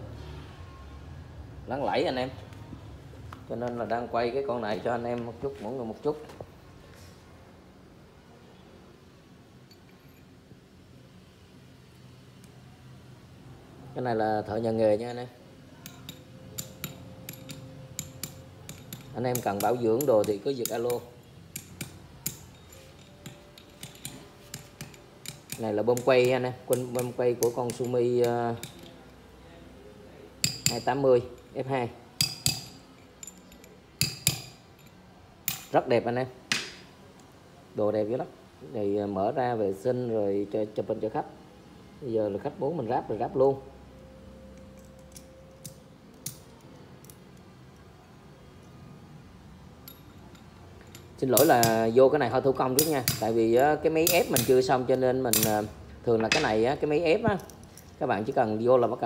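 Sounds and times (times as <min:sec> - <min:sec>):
metal tools clicking: 0:15.8 - 0:29.1, 0:30.4 - 0:31.6, 0:32.2 - 0:35.8, 0:44.6 - 0:47.5, 0:49.8 - 0:58.0
metal parts clinking: 0:15.9 - 0:29.1, 0:30.4 - 0:31.6, 0:32.2 - 0:35.8, 0:44.6 - 0:47.5, 0:49.8 - 0:51.9, 0:55.3 - 0:58.0.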